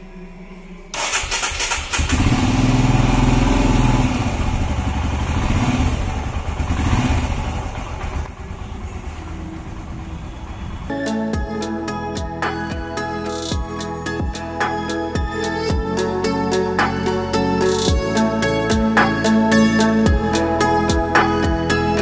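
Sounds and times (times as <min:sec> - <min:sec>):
motorcycle engine running: 0:01.5 - 0:12.9.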